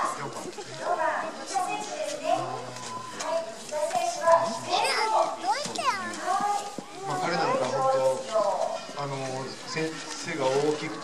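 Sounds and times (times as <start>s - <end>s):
children chattering: 0.0s - 11.0s.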